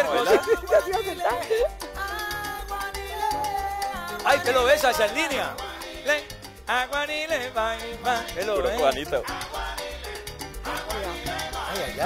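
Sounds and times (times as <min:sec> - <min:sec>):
salsa music: 0:00.0 - 0:12.0.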